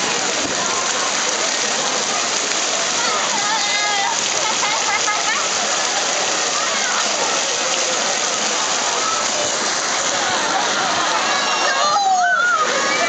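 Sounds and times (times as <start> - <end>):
water spraying and splashing: 0.0 - 13.0.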